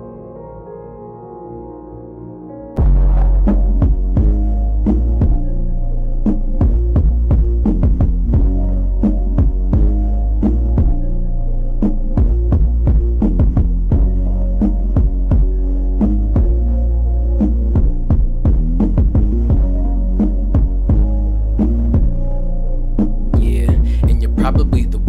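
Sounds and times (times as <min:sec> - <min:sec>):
hip-hop instrumental beat: 0:02.8 - 0:25.0.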